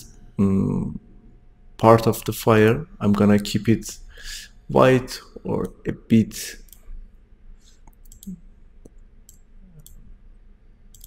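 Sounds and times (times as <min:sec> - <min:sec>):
computer mouse clicks: 0:07.6 - 0:10.0.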